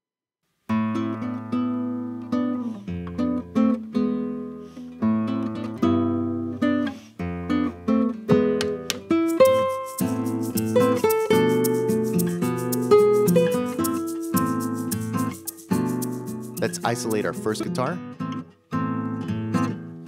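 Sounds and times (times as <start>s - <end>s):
guitars strumming chords: 0.7s - 20.0s
percussive shaker: 9.2s - 17.2s.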